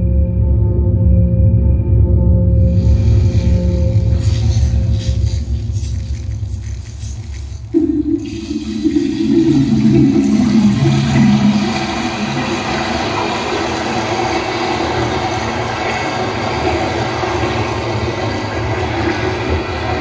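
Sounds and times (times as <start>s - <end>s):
water-like rushing noise: 2.8s - 20.0s.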